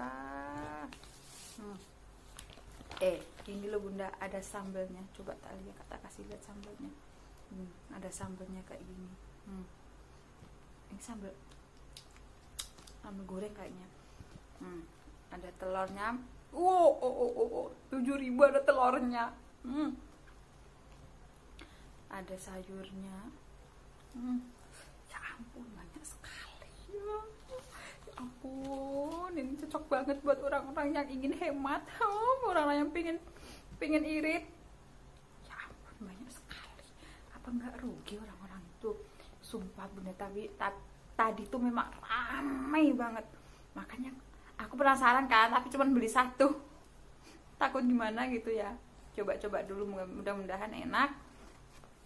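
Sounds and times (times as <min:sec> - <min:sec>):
woman humming hmm: 0:00.0 - 0:01.0, 0:09.4 - 0:09.8, 0:19.6 - 0:20.2, 0:24.1 - 0:24.9
woman humming: 0:00.0 - 0:01.9, 0:09.4 - 0:09.8, 0:14.6 - 0:15.0, 0:19.6 - 0:20.2, 0:24.1 - 0:24.6, 0:26.5 - 0:29.6
woman whispering: 0:24.1 - 0:29.8, 0:35.4 - 0:39.9.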